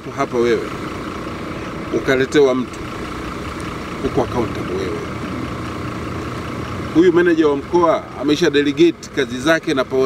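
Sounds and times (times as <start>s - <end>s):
engine idling hum: 0.0s - 10.0s.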